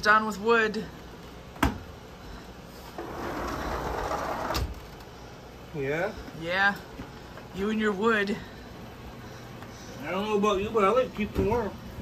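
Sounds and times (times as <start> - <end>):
sliding glass door sliding shut: 3.0 - 5.1.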